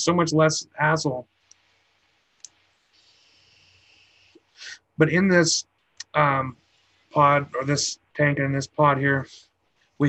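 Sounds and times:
vape drawing hiss: 1.4 - 4.7.

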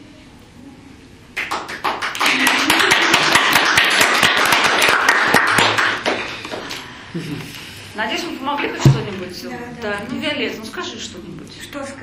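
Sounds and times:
audience applauding: 1.4 - 6.8.

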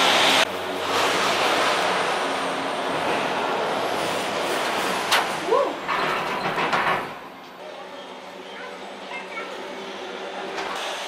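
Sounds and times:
cable car machinery running: 0.0 - 11.0.

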